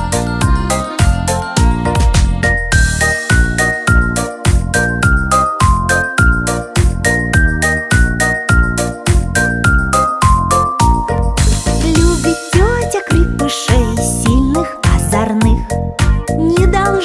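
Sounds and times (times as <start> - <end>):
bouncy children's song instrumental: 0.0 - 17.0.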